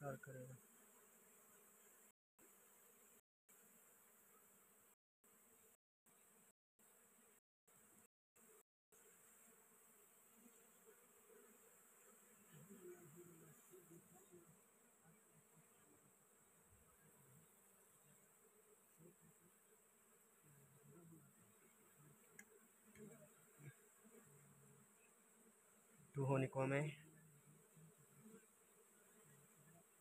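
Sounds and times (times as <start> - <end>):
bees humming in flight: 0.5 - 26.2, 26.9 - 30.0
honey bees buzzing: 0.5 - 30.0.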